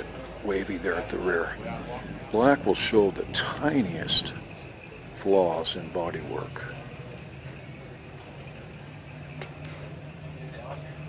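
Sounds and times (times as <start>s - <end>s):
faint background noise: 0.0s - 11.0s
steady low hum: 0.0s - 11.0s.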